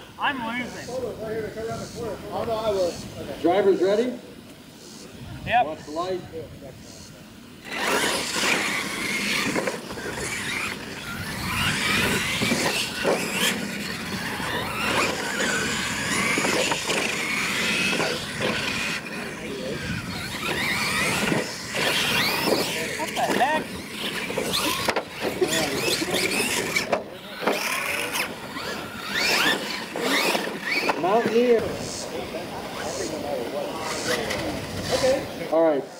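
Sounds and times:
electric motors whining: 0:00.0 - 0:35.7
toy trucks knocking on landings: 0:24.1 - 0:31.4.

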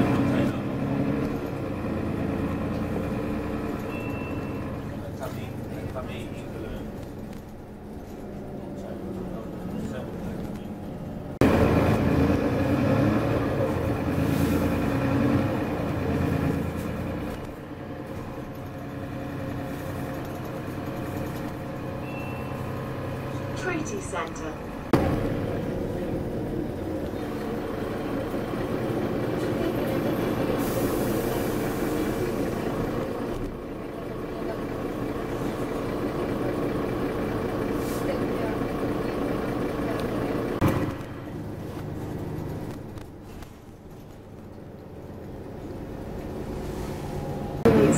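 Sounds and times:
bus diesel engine drone: 0:00.0 - 0:47.9
road noise: 0:00.0 - 0:47.9.

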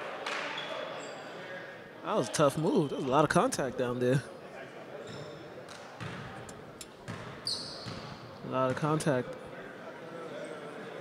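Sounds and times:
murmur of voices in a hall: 0:00.0 - 0:11.0.

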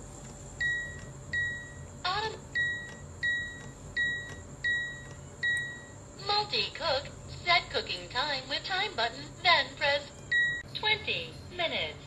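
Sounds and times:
multicooker control panel beeps: 0:00.6 - 0:06.1, 0:10.0 - 0:10.7.

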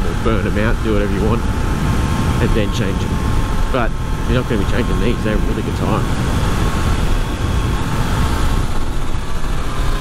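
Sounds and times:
motorcycle engine running: 0:00.0 - 0:10.0
wind rushing over microphone: 0:00.0 - 0:10.0.

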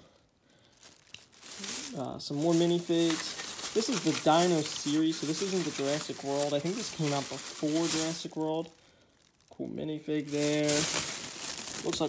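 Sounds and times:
plastic bag crinkling: 0:00.6 - 0:12.0
loose plastic bricks rummaged: 0:00.8 - 0:08.8, 0:10.2 - 0:12.0.

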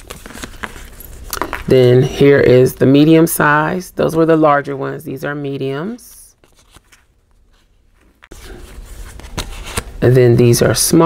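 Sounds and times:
paper sticker sheets rustling: 0:00.0 - 0:01.7, 0:06.4 - 0:10.2.

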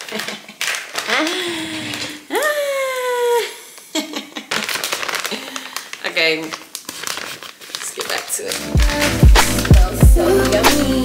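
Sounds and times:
plastic pouch crinkling: 0:00.0 - 0:02.3, 0:04.4 - 0:11.0.

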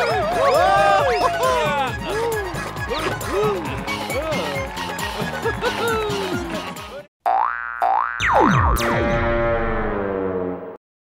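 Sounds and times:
cartoon background music: 0:00.0 - 0:07.0.

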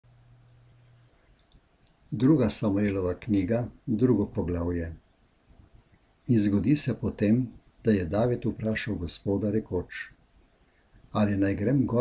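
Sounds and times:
low steady hum: 0:00.0 - 0:12.0
faint clicks: 0:00.6 - 0:02.1, 0:05.5 - 0:06.0.

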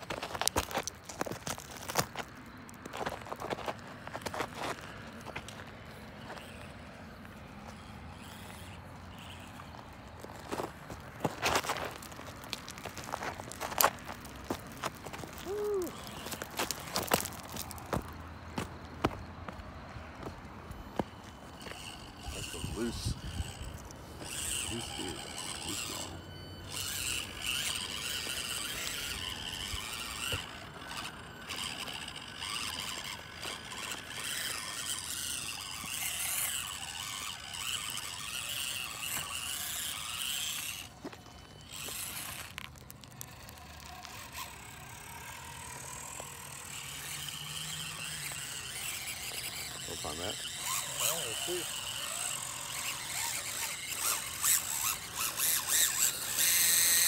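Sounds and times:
small electric motors whining: 0:00.0 - 0:57.0.

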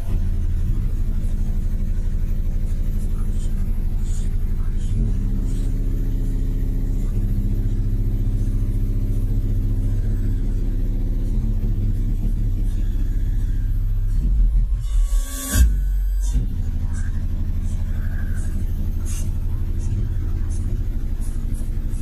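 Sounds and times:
deep subwoofer bass notes: 0:00.0 - 0:22.0.

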